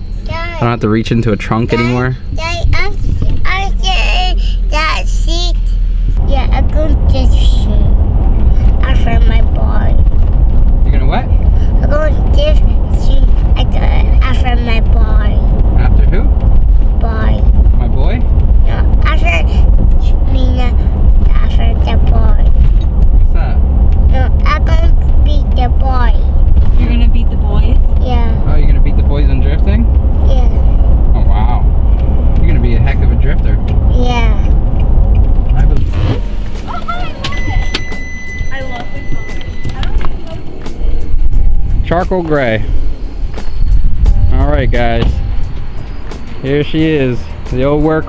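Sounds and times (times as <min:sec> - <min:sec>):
road and engine rumble: 0:00.0 - 0:48.0.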